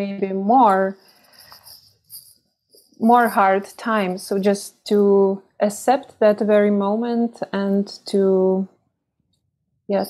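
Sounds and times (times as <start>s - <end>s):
faint breathing: 1.0s - 1.9s.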